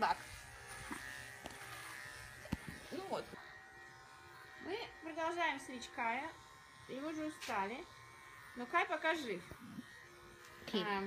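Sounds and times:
electric clippers buzzing: 0.0 - 11.0.

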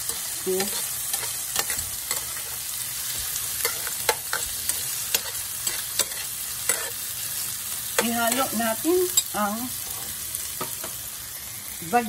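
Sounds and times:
metal spoon scraping a pan: 0.0 - 7.1, 7.9 - 11.0
food sizzling in hot oil: 0.0 - 12.0.

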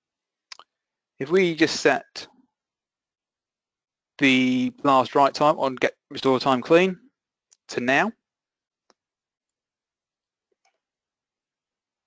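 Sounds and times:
person speaking: 0.5 - 2.4, 4.2 - 8.2.

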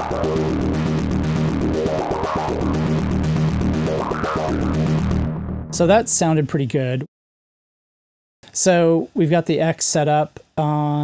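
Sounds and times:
fast synth pulse: 0.0 - 5.9
distorted synthesizer notes: 0.0 - 6.4.

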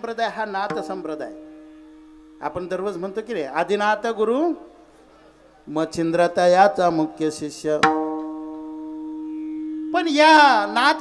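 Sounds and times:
harmonium drone: 0.8 - 4.2, 8.3 - 11.0.

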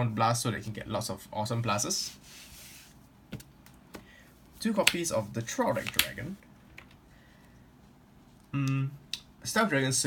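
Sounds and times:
cards sliding and rubbing: 2.0 - 3.0.

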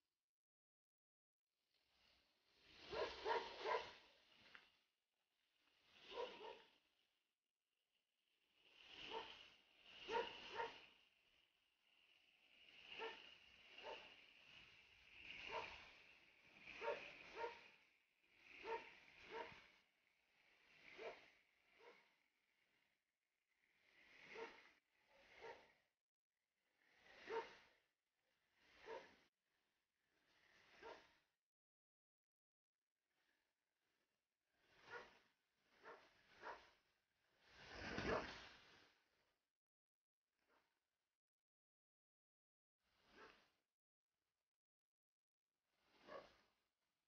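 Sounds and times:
dog barking: 2.9 - 4.0, 6.1 - 6.7, 9.1 - 9.4, 10.1 - 10.8, 13.0 - 13.2, 13.8 - 14.1, 15.5 - 15.7, 16.8 - 17.6, 18.6 - 19.5, 27.3 - 27.6, 28.8 - 29.1, 30.8 - 31.1.

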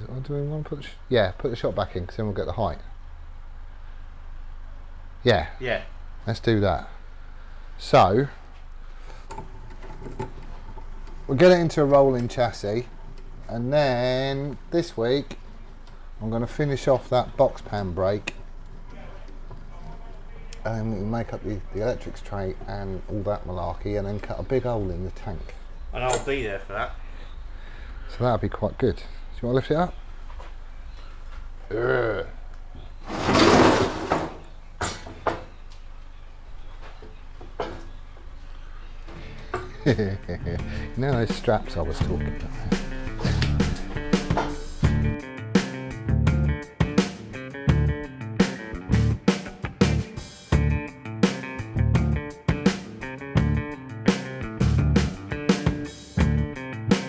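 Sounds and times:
low steady hum: 0.0 - 33.0, 33.8 - 45.2.

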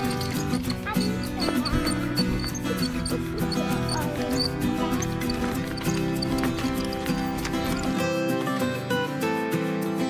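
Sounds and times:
ticking beat: 0.0 - 8.6.

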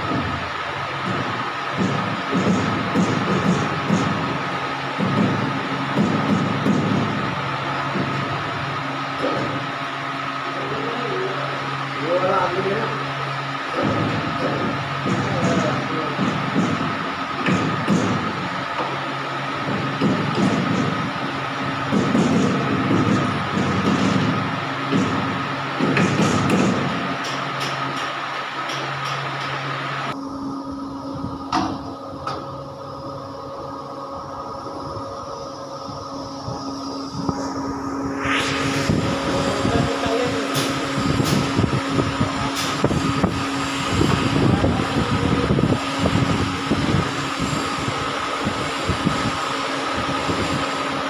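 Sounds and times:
machine whine: 0.0 - 51.0
low hum: 29.6 - 49.5
hydraulic hiss: 37.2 - 41.5.

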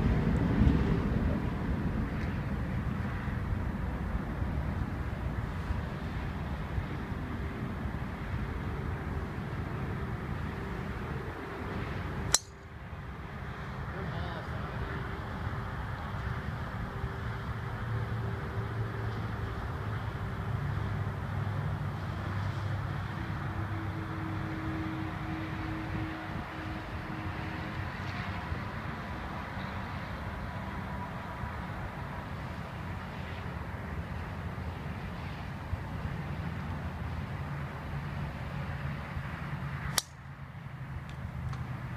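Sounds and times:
road traffic hum: 0.0 - 41.9.

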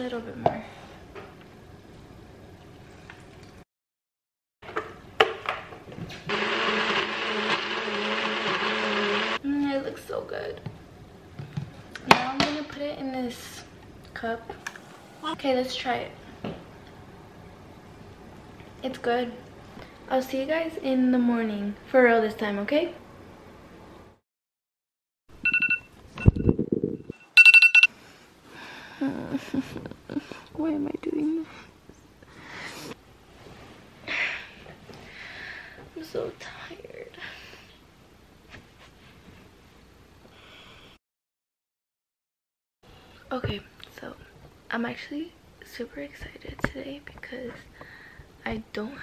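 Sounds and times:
blender whirring: 6.3 - 9.4
phone alarm high beeps: 25.4 - 26.5, 27.1 - 27.9.

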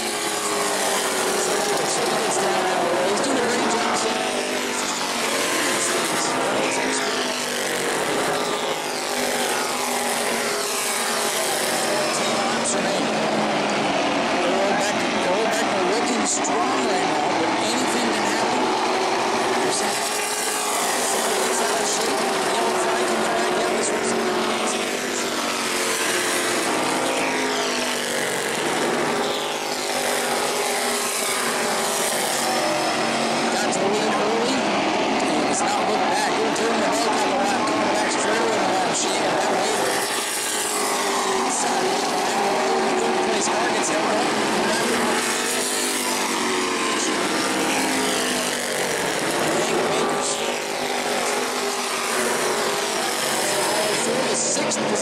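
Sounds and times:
race car engines passing: 0.0 - 55.0.

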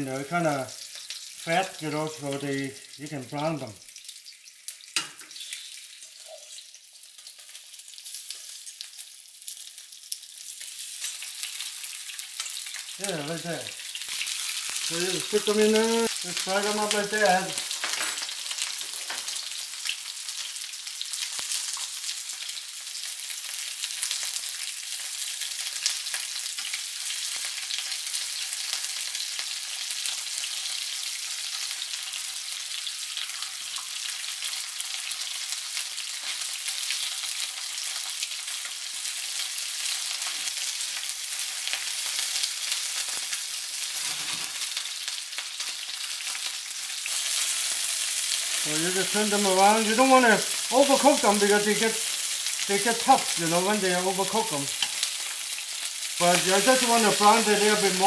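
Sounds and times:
fish sizzling in hot oil: 0.0 - 58.0.

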